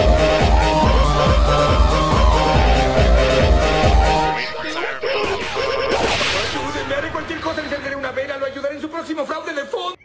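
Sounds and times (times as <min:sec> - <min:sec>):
warbling pitch-shifted voice samples: 0:00.4 - 0:08.0
sharp whip-like crack: 0:06.0 - 0:06.7.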